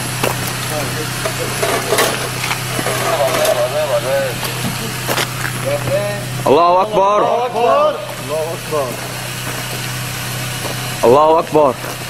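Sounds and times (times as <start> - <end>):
low engine hum: 0.0 - 12.0
faint men's voices: 0.6 - 9.8.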